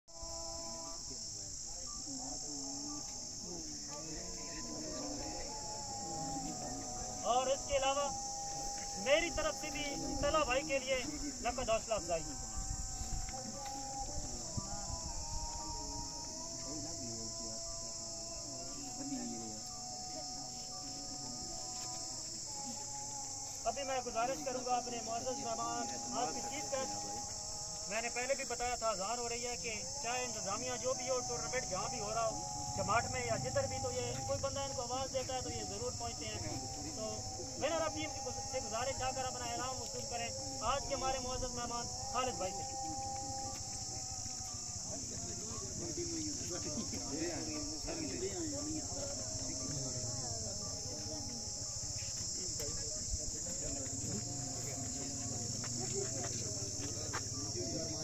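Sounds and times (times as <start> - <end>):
high-pitched insect chorus: 0.1 - 58.0
people talking faintly: 0.1 - 58.0
man's voice: 0.6 - 20.5, 21.2 - 58.0.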